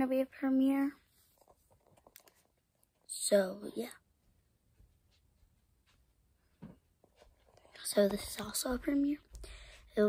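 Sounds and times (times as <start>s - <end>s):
girl speaking softly: 0.0s - 1.0s, 3.1s - 4.0s, 7.6s - 9.3s.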